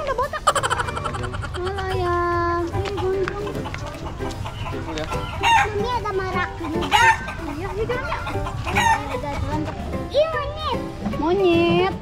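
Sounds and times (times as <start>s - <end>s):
chickens clucking: 0.0s - 11.2s
sharp loud chicken calls: 0.4s - 2.0s, 3.5s - 5.8s, 6.8s - 7.5s, 8.2s - 9.1s.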